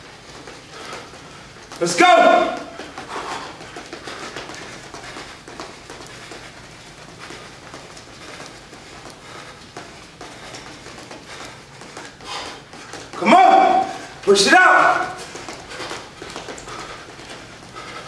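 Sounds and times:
footsteps on hardwood floor: 0.0s - 18.0s.

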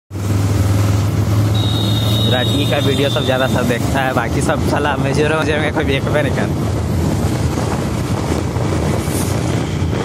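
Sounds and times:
vehicle engine hum: 0.1s - 10.0s.

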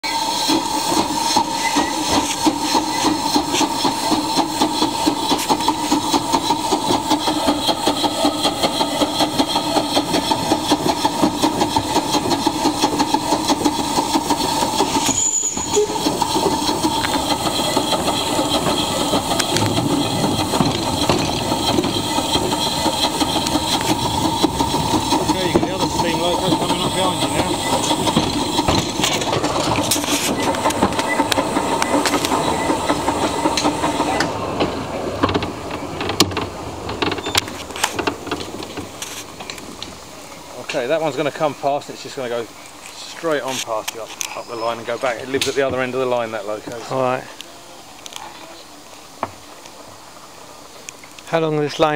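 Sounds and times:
hiss of steam: 0.0s - 51.9s
steam locomotive chuffing: 0.0s - 51.9s.

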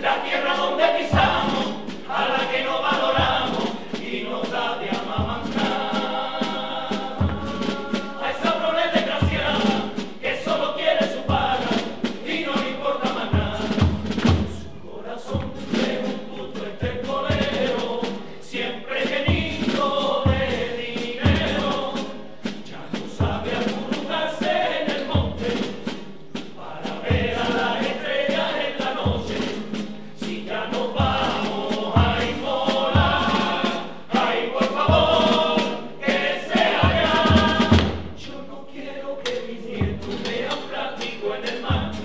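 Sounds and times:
male chorus singing: 0.0s - 42.0s
bass drum beating: 1.1s - 14.8s, 30.3s - 38.2s
sharp drum taps: 13.8s - 14.6s, 36.8s - 38.2s.

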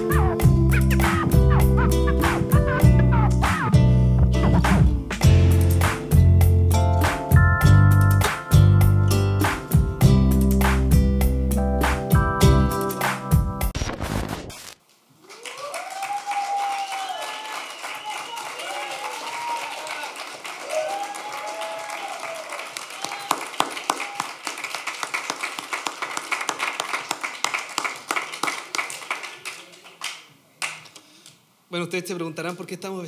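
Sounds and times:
audience clapping: 0.0s - 3.6s, 15.2s - 31.0s
music: 0.0s - 14.4s
audience cheering and whooping: 15.2s - 24.6s.

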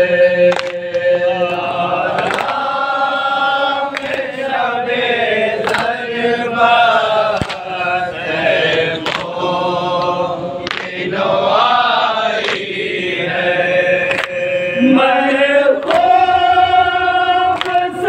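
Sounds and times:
men chanting a lament: 0.0s - 18.0s
palms slapping chests: 7.3s - 7.8s.

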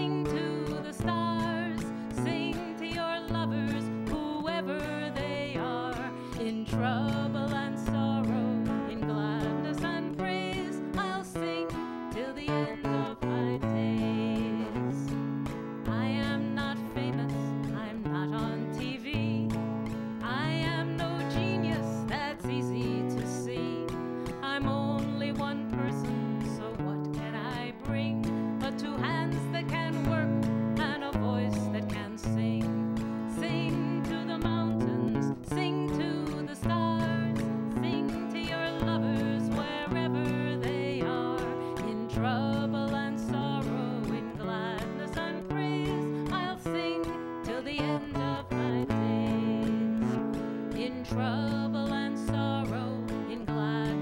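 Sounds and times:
acoustic guitar chords: 0.0s - 54.0s
woman singing: 0.0s - 54.0s.

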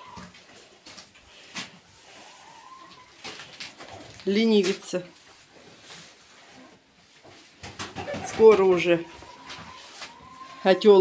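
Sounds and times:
cattle knocking and rustling: 2.8s - 10.2s.

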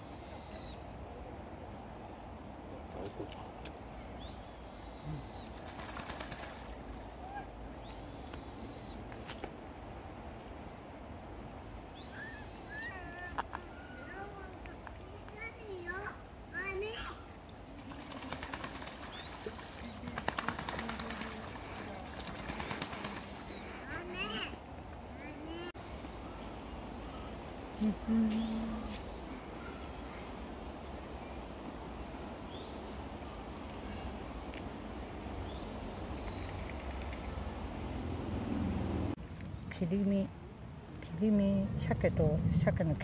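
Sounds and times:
bird whistled call: 0.0s - 0.8s
ducks splashing in water: 5.5s - 7.2s, 17.8s - 24.5s
low background rumble: 10.0s - 43.0s.

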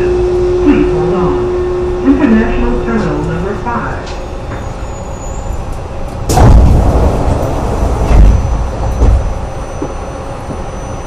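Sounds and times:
tram rumbling and rolling: 0.0s - 11.0s.

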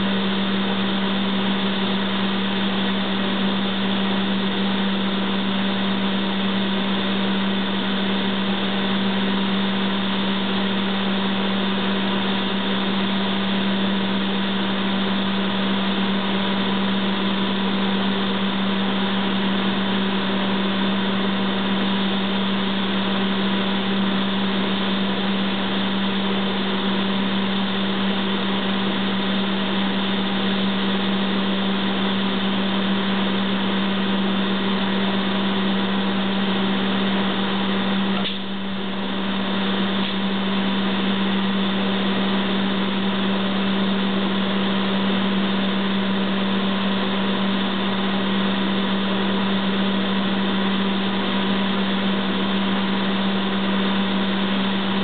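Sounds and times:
shop machinery drone: 0.0s - 55.0s.

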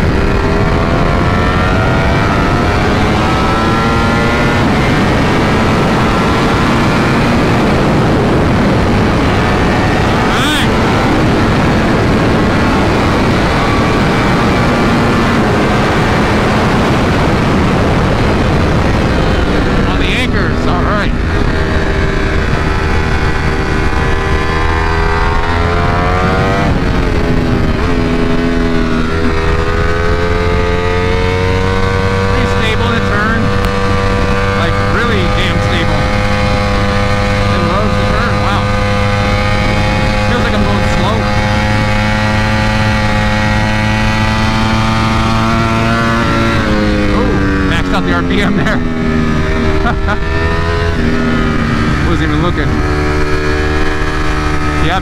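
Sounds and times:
motorcycle engine revving: 0.0s - 55.0s
wind rush: 0.0s - 55.0s.

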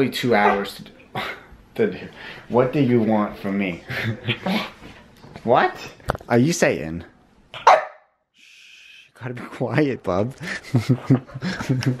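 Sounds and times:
dog barking: 0.4s - 0.7s, 7.6s - 8.1s.

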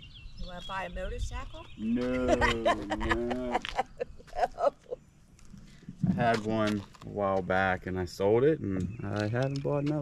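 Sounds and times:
person laughing: 2.0s - 5.0s.

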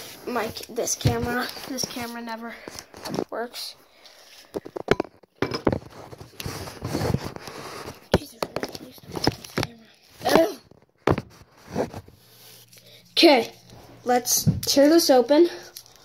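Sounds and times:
phone handling rubbing and rustling: 4.5s - 9.8s, 10.7s - 12.7s.

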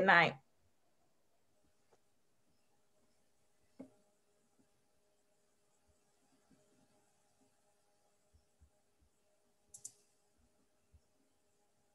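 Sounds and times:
sharp clicks: 9.7s - 10.1s.

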